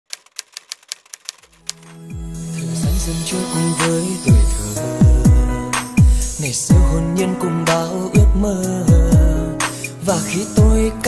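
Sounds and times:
typewriter key clacks: 0.1 - 2.0
soft music: 1.6 - 11.0.

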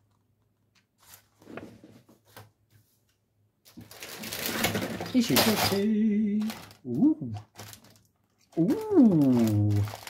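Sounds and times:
plastic wrapping crinkling: 3.6 - 10.0.

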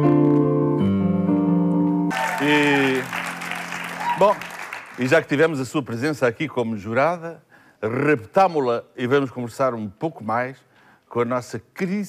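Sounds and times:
grand piano chords: 0.0 - 4.0.

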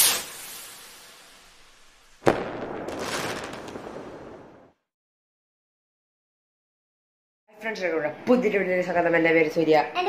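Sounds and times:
noise tail: 0.0 - 4.8
sharp bang with crackling tail: 2.2 - 4.8.

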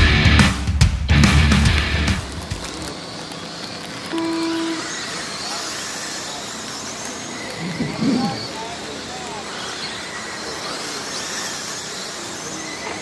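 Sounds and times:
outdoor hiss: 0.6 - 13.0
remote control cars whining: 1.9 - 13.0
electronic tone: 4.1 - 4.9.

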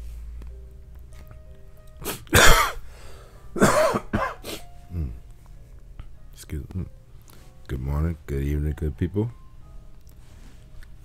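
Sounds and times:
man coughing: 2.3 - 2.8, 3.6 - 4.4.

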